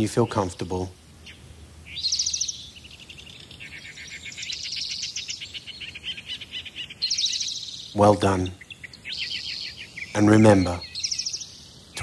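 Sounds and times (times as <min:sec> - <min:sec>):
bird trilling: 0:00.0 - 0:12.0.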